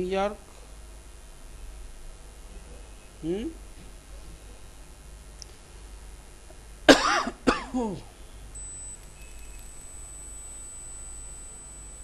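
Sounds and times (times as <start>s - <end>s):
background hiss: 0.0s - 12.0s
faint high-pitched whine: 0.0s - 12.0s.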